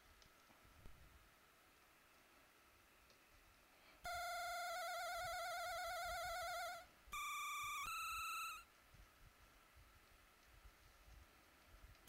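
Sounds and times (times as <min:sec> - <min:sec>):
synthesizer beeping notes: 0:04.1 - 0:08.6.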